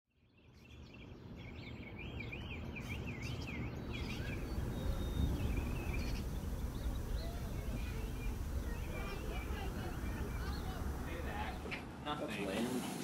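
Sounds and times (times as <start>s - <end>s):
bird singing swooping notes: 0.2s - 11.7s
low rumble: 4.1s - 11.7s.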